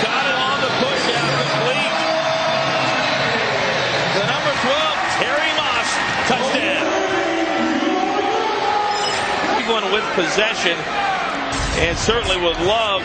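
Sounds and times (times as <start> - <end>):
crowd din: 0.0 - 13.0
indistinct shouts: 1.1 - 10.0.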